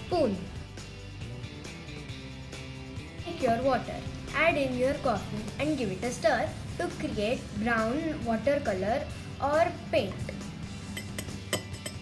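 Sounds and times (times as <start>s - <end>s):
metal spoon clinking against glass: 10.9s - 12.0s.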